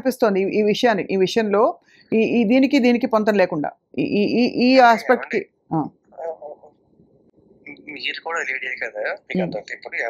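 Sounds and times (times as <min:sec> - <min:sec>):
person speaking: 0:07.6 - 0:10.0.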